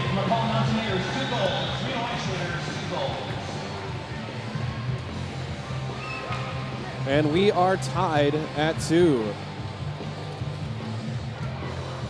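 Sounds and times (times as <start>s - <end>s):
crowd chatter: 0.0s - 12.0s
music over public-address system: 0.0s - 12.0s.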